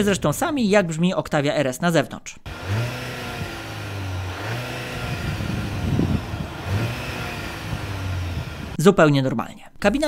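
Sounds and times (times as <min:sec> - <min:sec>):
car exhaust idling: 0:02.5 - 0:08.8.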